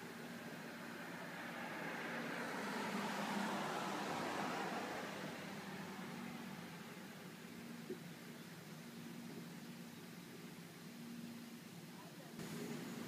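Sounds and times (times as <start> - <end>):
car passing by: 0.0 - 7.4.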